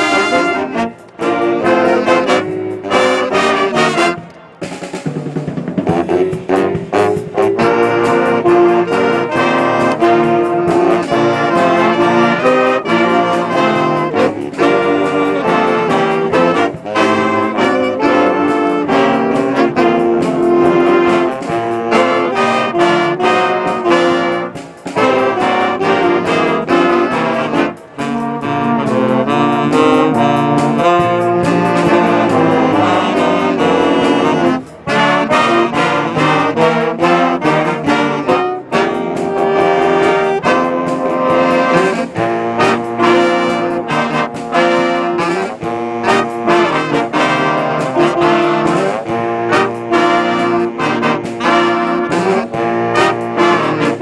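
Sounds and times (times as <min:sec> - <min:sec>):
jazz big band playing: 0:00.0 - 0:54.0.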